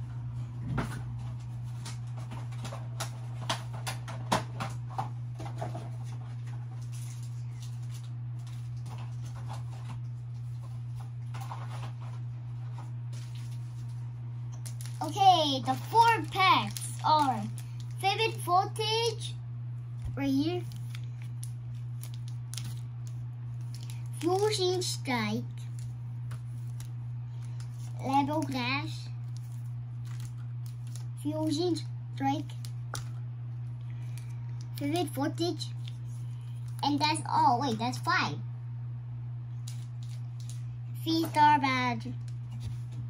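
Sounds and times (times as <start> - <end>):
steady low hum: 0.0 - 43.0
card packs rustling and tapping: 0.8 - 14.0, 14.6 - 19.2, 20.0 - 33.2, 34.0 - 37.8, 39.6 - 43.0
foil wrappers crinkling: 4.8 - 37.8, 39.6 - 40.8.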